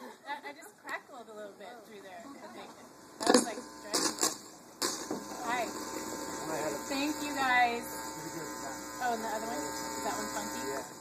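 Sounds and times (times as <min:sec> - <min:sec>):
low sound system hum: 0:01.3 - 0:11.0.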